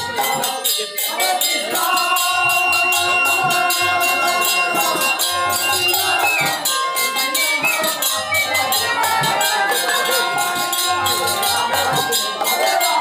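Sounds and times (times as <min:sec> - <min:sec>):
brass hand cymbals clashing: 0:00.0 - 0:13.0
bamboo flute melody: 0:01.9 - 0:10.3.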